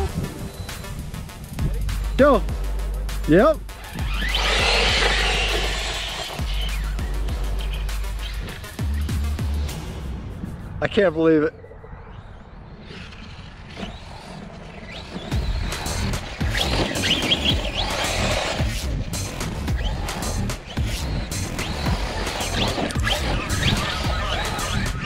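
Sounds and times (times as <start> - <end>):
electric motor whining: 3.7 - 9.0, 12.9 - 25.0
tyres churning dirt: 3.7 - 9.2, 12.8 - 25.0.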